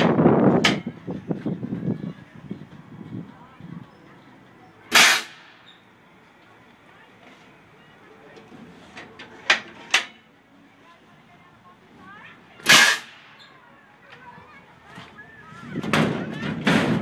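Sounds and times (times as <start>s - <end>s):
air cannon blast: 4.9s - 5.5s, 12.6s - 13.3s.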